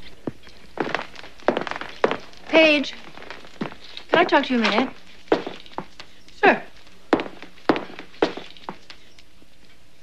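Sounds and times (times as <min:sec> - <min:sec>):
footsteps on hard floor: 0:00.2 - 0:06.1, 0:06.8 - 0:08.9.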